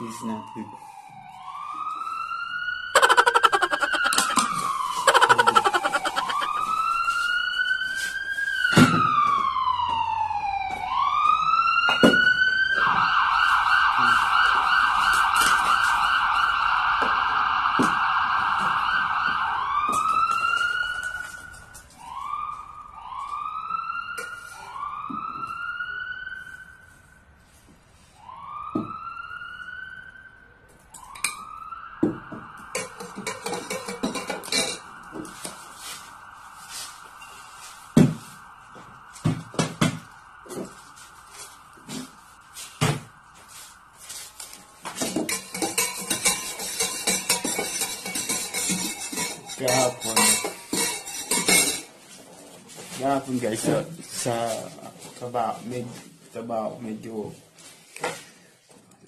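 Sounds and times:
siren-like whoops: 0:00.0 - 0:27.3, 0:28.2 - 0:45.0.

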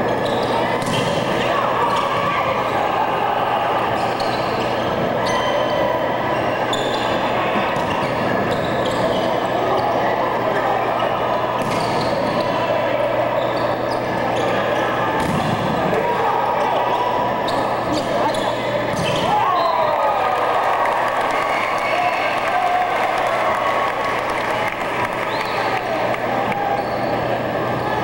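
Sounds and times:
crowd chatter: 0:00.0 - 0:28.0
sneakers squeaking on court: 0:00.1 - 0:01.2, 0:06.7 - 0:10.0, 0:17.4 - 0:19.7.

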